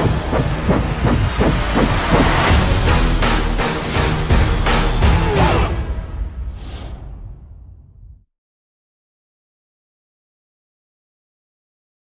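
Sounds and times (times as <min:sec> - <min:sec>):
helicopter rotor chopping: 0:00.0 - 0:03.2.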